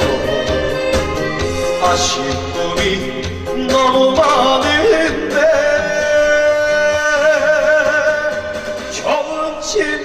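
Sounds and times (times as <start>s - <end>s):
backing music: 0.0s - 10.0s
person singing into microphone: 0.0s - 10.0s.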